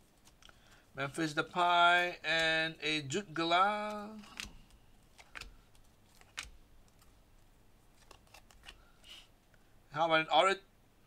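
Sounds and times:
trading cards rustling: 0:00.0 - 0:09.3
sharp card clicks: 0:03.7 - 0:07.0.

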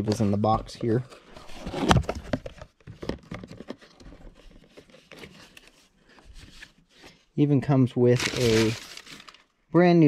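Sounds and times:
cardboard and paper rustling: 0:00.0 - 0:07.1, 0:08.1 - 0:09.5.

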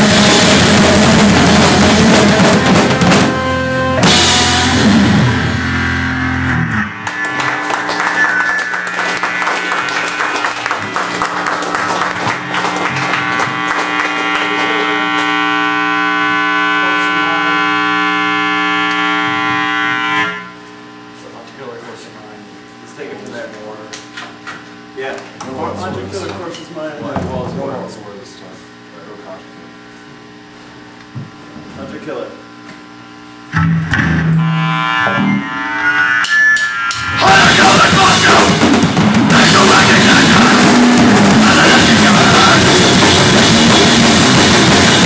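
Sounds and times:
drums hitting hard: 0:00.0 - 0:08.0, 0:25.5 - 0:27.9, 0:36.9 - 0:45.0
live rock band playing: 0:00.0 - 0:17.6, 0:33.5 - 0:45.0
amplified guitar chord ringing: 0:00.1 - 0:21.0, 0:25.4 - 0:27.4, 0:33.5 - 0:38.7.

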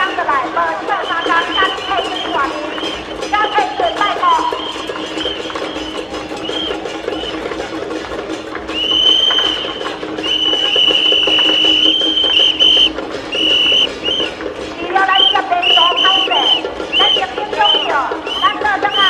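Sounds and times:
fast rhythmic percussion: 0:00.0 - 0:19.0
high held tone: 0:08.8 - 0:19.0.

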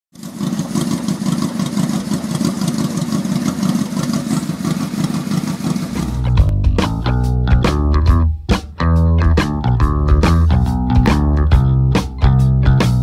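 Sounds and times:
motorcycle engine idling: 0:00.2 - 0:13.0.

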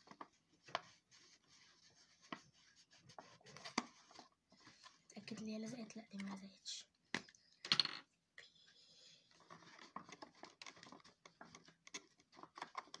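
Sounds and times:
paper rustling and crinkling: 0:00.0 - 0:05.8, 0:09.3 - 0:13.0
small rapid crackles and taps: 0:09.3 - 0:13.0.

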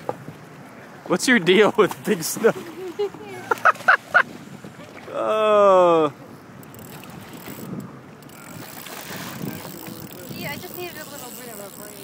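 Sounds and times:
wind on microphone: 0:06.9 - 0:11.4.

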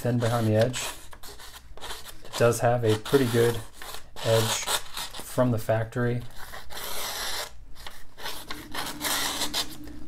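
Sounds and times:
knife slicing paper: 0:06.4 - 0:09.7.

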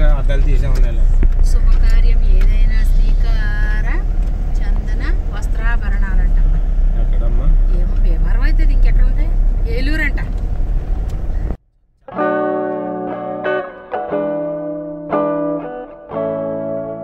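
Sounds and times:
people talking: 0:00.0 - 0:10.4
car engine and road rumble: 0:00.0 - 0:12.1.

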